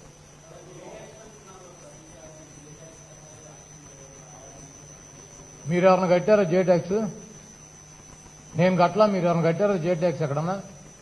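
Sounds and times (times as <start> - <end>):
high-pitched whine: 0.0 - 11.0
low steady hum: 0.0 - 11.0.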